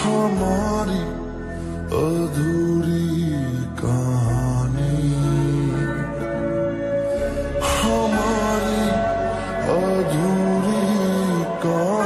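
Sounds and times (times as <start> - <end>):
soft sustained backing music: 0.0 - 12.0
man singing long notes: 2.0 - 12.0.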